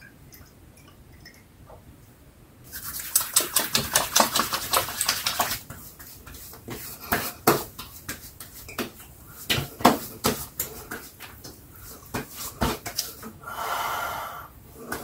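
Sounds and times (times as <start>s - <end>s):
wet palms rubbing together: 2.7s - 13.2s.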